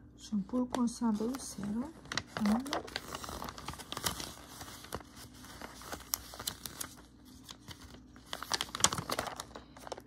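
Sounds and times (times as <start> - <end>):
paper pages rustling: 0.6 - 10.0.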